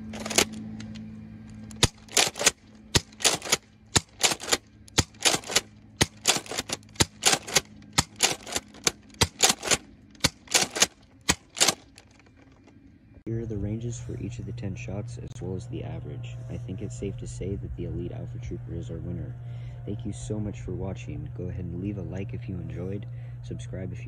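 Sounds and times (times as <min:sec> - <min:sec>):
dart blaster plastic clacks: 0:01.7 - 0:12.3.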